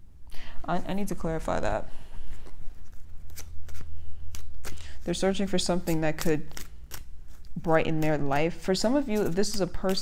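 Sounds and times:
cards shuffling: 2.2 - 10.0.

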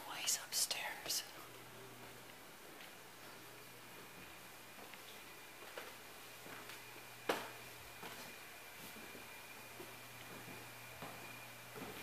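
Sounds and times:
footsteps on wooden stairs: 2.0 - 12.0.

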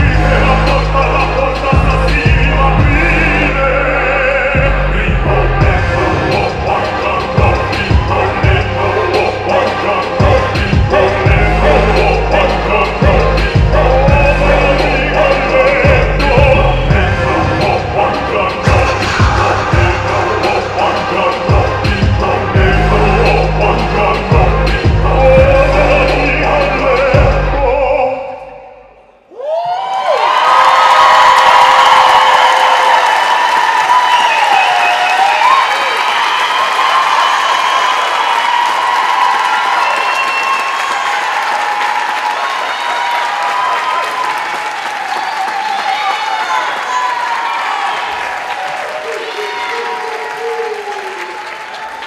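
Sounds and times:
audience applause and cheering: 0.0 - 27.4, 29.2 - 52.0
shouted whoops: 29.3 - 52.0.

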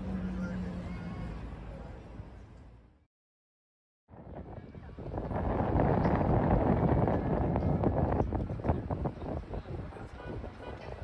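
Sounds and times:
city traffic hum: 0.0 - 3.1, 4.2 - 11.0
wind buffeting microphone: 4.1 - 11.0.

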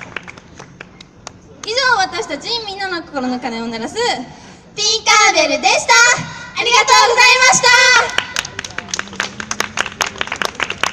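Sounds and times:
audience clapping: 0.0 - 1.7, 8.1 - 10.9.

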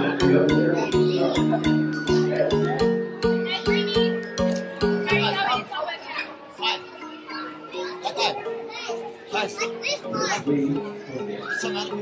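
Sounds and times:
simple melody music: 0.0 - 5.8, 6.5 - 12.0
children chattering: 0.0 - 12.0.

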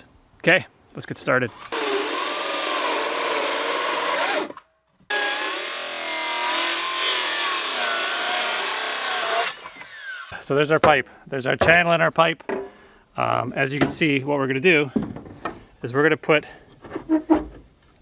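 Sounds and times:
circular saw cutting plastic pipe: 1.6 - 10.4.

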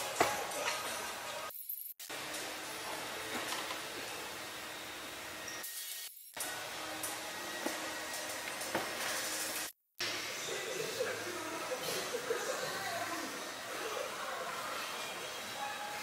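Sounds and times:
steady hissing room noise: 0.0 - 1.5, 2.1 - 5.5, 6.4 - 16.0.

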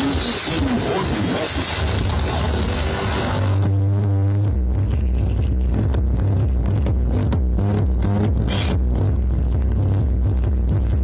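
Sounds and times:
bass-heavy electronic dance music: 0.0 - 11.0
deep sustained bass notes: 0.0 - 11.0.

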